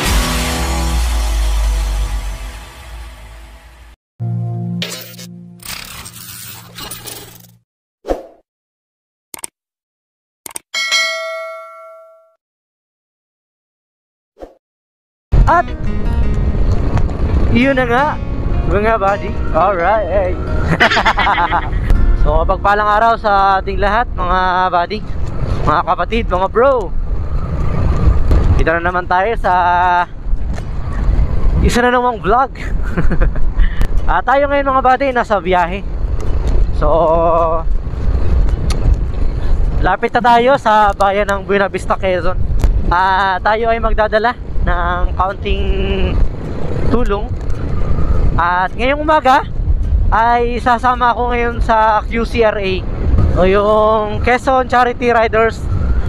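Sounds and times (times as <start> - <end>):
bright bell ding: 10.8 - 12.4
wind buffeting microphone: 20.1 - 56.0.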